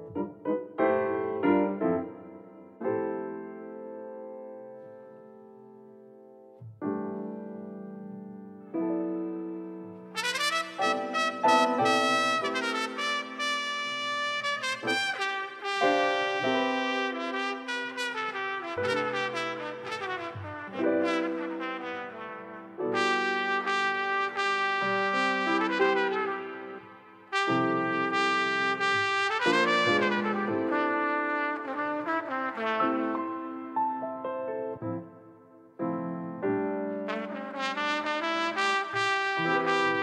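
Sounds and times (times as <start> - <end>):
smooth jazz with horn melody: 10.1 - 33.8, 36.5 - 40.0.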